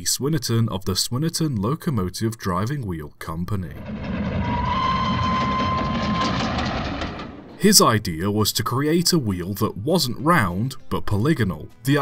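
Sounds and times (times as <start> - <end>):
train rumbling: 3.7 - 8.0
train whistle: 4.4 - 7.2.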